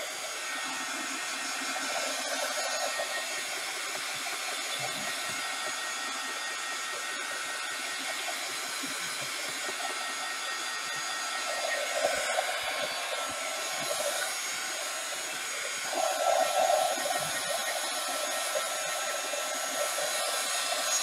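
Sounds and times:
heat gun blowing air: 0.0s - 21.0s.

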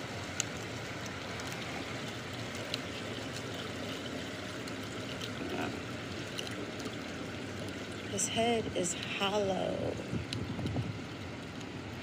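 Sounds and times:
faint ticks: 4.6s - 8.0s, 10.2s - 11.7s
wind buffeting microphone: 10.0s - 11.4s.

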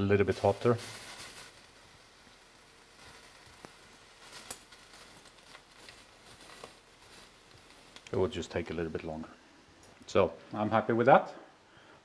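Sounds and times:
food frying with faint sizzle: 0.0s - 10.2s.

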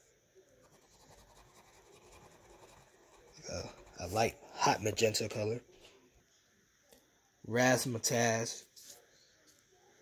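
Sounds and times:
crayon scratching on paper: 0.6s - 4.4s.

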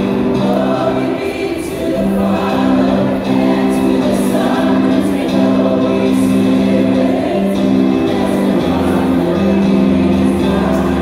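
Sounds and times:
group singing worship song: 0.0s - 11.0s.

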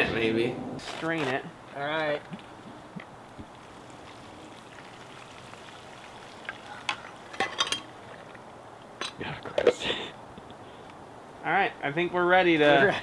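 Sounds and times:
water pouring and splashing: 3.4s - 9.0s.

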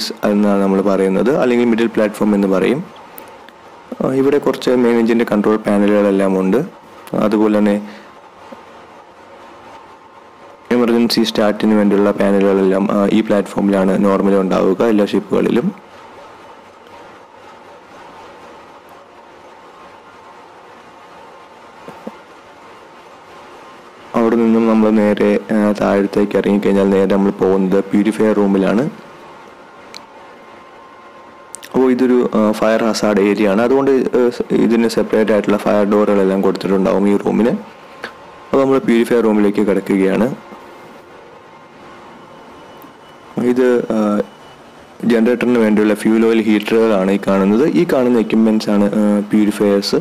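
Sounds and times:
engine room machinery running: 0.0s - 50.0s
faint steady whining tones: 0.0s - 50.0s
engine-room machinery hiss: 6.8s - 10.5s.

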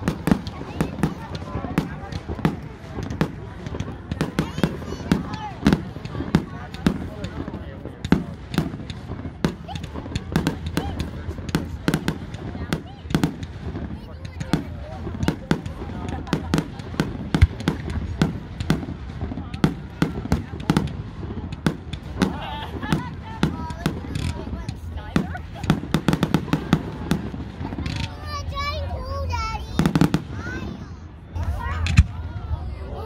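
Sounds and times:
fireworks launching and bursting: 0.0s - 33.0s.

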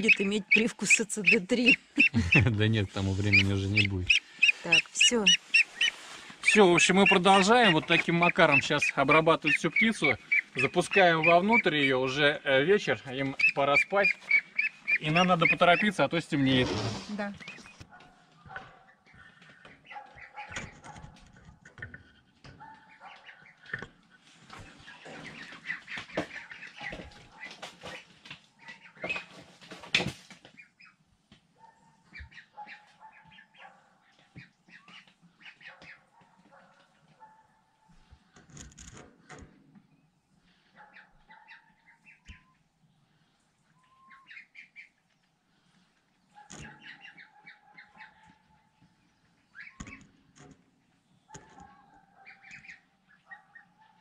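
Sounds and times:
ducklings peeping and calling: 0.0s - 17.9s, 18.6s - 37.2s, 38.0s - 54.0s
wing-flapping and rustling: 3.0s - 11.0s, 24.2s - 30.6s.

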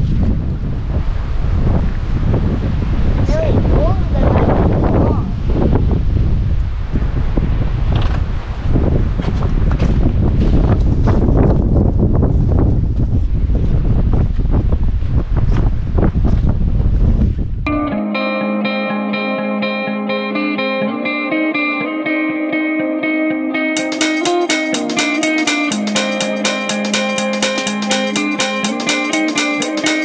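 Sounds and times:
wind buffeting microphone: 0.0s - 17.7s
plucked guitar music: 17.7s - 30.0s.

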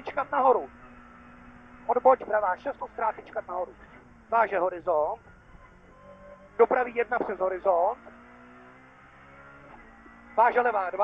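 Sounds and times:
car engine under load: 0.0s - 11.0s.

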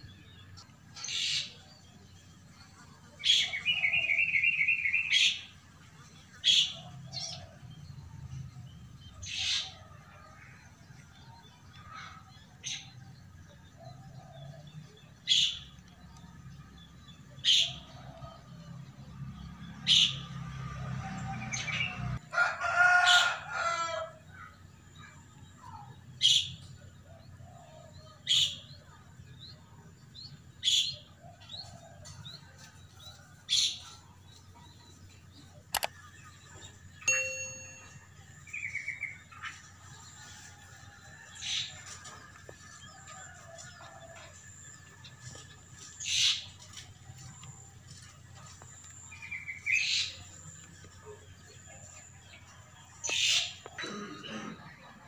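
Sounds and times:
rooster crowing: 21.0s - 24.2s, 40.2s - 44.6s.

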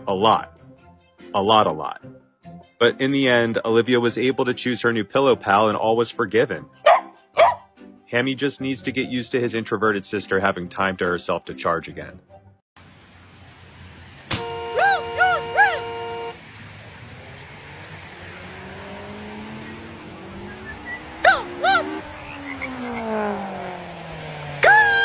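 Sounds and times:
dog barking: 6.8s - 7.7s
traffic noise: 12.8s - 25.0s
car horn blaring: 14.3s - 16.4s
engine pitch rising and falling: 15.2s - 25.0s.

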